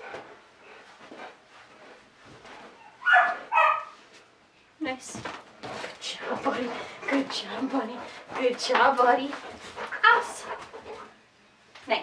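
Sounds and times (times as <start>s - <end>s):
dog barking: 3.0s - 4.0s.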